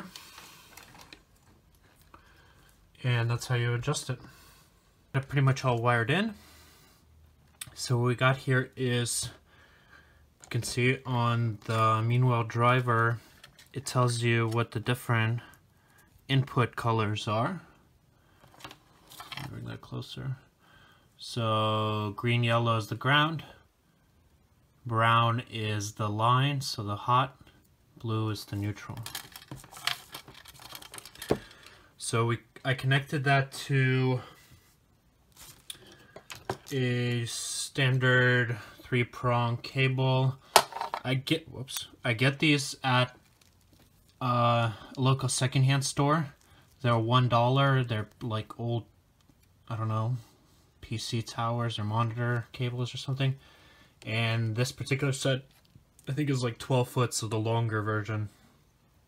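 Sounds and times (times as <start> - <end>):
bubble wrap rustling: 0.0 - 2.0, 28.8 - 31.7, 35.2 - 36.0, 43.0 - 44.2
cables and metal handling clicks: 0.0 - 2.2, 28.8 - 31.8.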